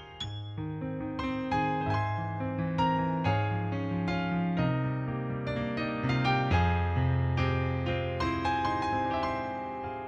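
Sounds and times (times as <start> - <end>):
piano music: 0.0 - 10.0.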